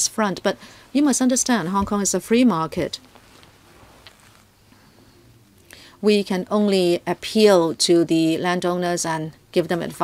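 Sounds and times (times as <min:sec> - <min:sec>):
person inhaling: 0:00.6 - 0:00.9, 0:04.7 - 0:06.0.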